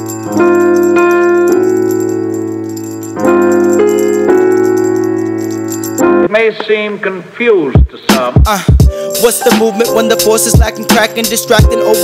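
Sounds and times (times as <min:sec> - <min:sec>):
jingling percussion: 0:00.0 - 0:06.3, 0:08.4 - 0:12.0
keyboard chords: 0:00.0 - 0:06.4, 0:08.7 - 0:12.0.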